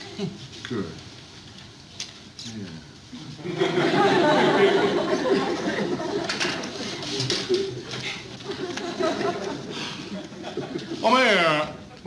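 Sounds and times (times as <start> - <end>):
studio audience laughing: 3.4 - 11.0.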